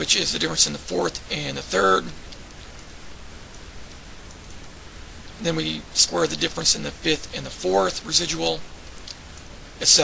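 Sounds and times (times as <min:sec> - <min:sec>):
microphone hiss: 0:00.0 - 0:10.0.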